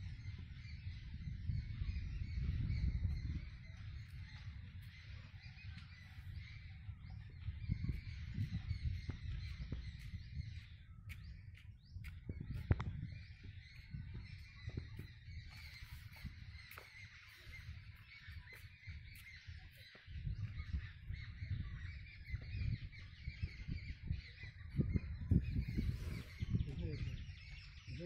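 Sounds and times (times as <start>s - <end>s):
small birds chirping: 0.0s - 28.0s
wind rumbling on microphone: 0.0s - 28.0s.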